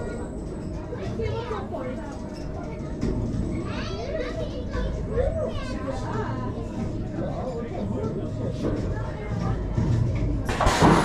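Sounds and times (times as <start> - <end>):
people chattering and calling out: 0.0 - 10.5.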